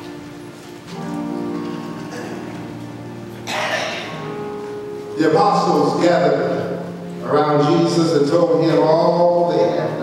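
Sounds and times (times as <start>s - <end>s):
congregation rustling: 0.0s - 10.0s
sustained instrumental church music: 0.0s - 10.0s.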